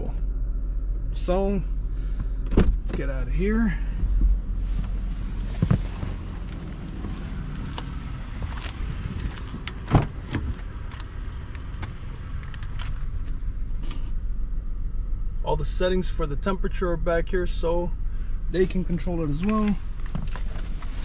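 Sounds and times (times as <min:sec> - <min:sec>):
low rumble: 0:00.0 - 0:21.0.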